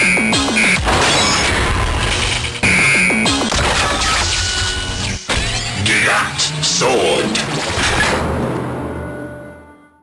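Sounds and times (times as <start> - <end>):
music: 0.0 - 10.0
synthesized crashes and clangs: 0.3 - 4.4, 7.5 - 9.4.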